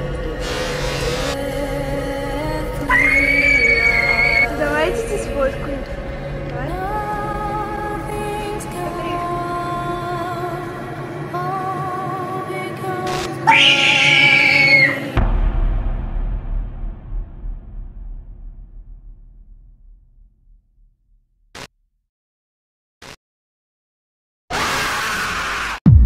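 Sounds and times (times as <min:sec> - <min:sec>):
low sustained drone: 0:00.0 - 0:15.2
horror soundtrack music: 0:00.0 - 0:19.0
shrill high sound: 0:02.9 - 0:04.6
deep boom ringing out: 0:15.2 - 0:21.3.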